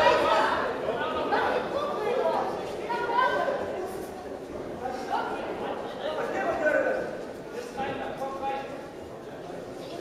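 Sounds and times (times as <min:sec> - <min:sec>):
hall crowd din: 0:00.0 - 0:10.0.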